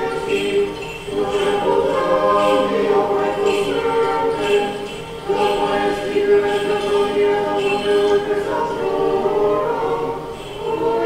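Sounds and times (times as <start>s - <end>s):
choir chanting a cappella: 0.0s - 11.0s.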